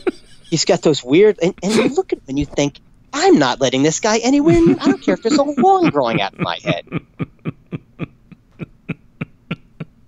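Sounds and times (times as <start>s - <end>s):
man laughing: 0.0s - 0.7s, 1.5s - 2.2s, 4.3s - 10.0s.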